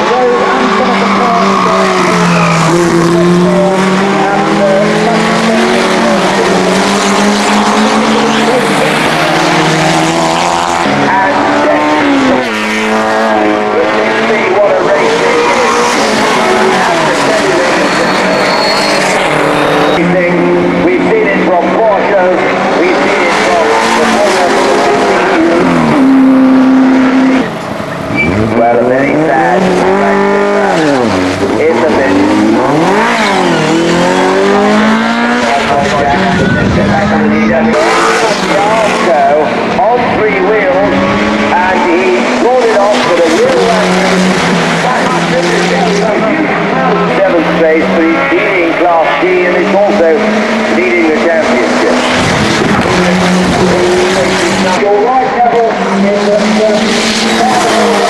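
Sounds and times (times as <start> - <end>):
racing cars revving past: 0.0 - 58.0.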